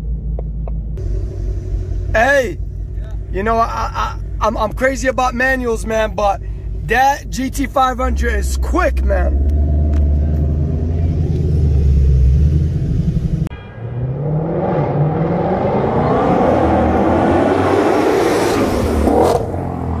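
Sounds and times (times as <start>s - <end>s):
car engine idling: 0.0s - 14.3s
car accelerating hard: 7.6s - 20.0s.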